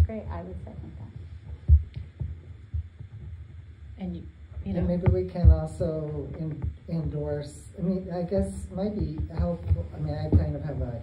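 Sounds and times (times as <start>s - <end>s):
dull low thumps: 0.0s - 11.0s.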